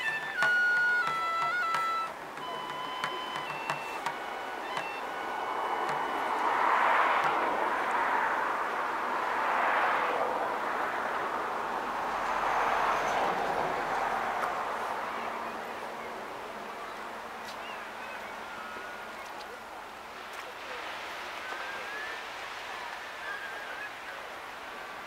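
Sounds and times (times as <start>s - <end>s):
flute held notes: 0.0s - 7.6s
surf washing on shore: 0.0s - 25.0s.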